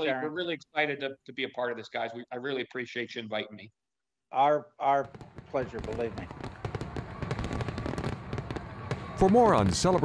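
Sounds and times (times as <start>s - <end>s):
fireworks crackling and banging: 5.0s - 10.0s.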